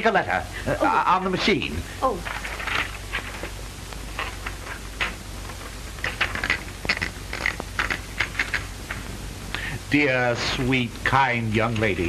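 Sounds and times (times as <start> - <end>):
soundtrack hum and hiss: 0.0 - 12.0.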